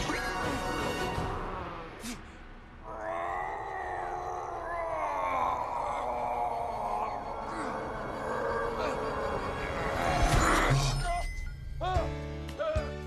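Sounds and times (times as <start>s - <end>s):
man groaning with effort: 2.8s - 10.8s.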